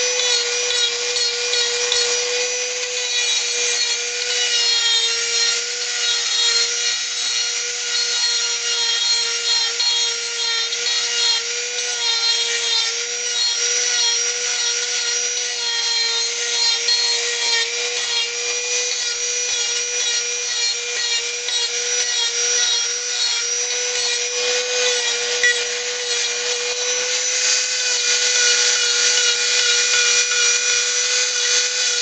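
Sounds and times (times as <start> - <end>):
rotary tool sanding wood: 0.0 - 32.0.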